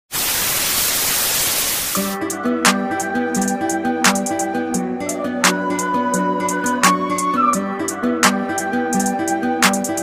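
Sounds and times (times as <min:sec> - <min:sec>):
television static hiss: 0:00.1 - 0:02.1.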